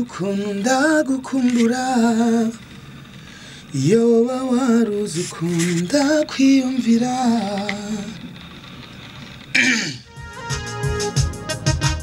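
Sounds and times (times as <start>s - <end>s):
man singing: 0.0s - 2.6s, 3.8s - 8.3s.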